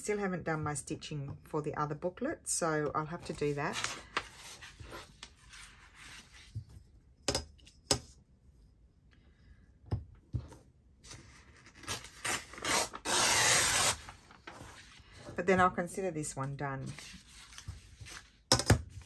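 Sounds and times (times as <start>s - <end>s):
paper being handled: 11.1s - 15.3s, 16.8s - 18.4s
paper tearing: 11.6s - 14.6s.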